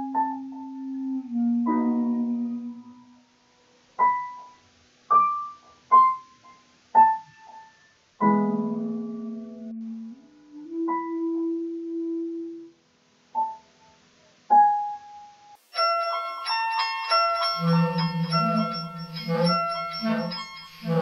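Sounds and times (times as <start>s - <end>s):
piano playing slowly: 0.0s - 21.0s.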